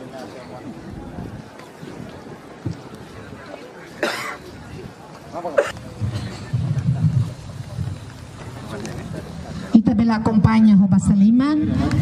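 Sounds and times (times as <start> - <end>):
faint indistinct voices: 0.0 - 12.0
outdoor background noise: 0.0 - 12.0.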